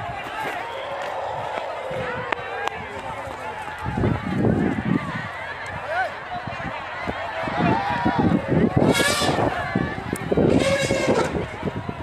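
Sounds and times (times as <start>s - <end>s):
distant people shouting: 0.0s - 12.0s
wind on microphone: 1.0s - 12.0s.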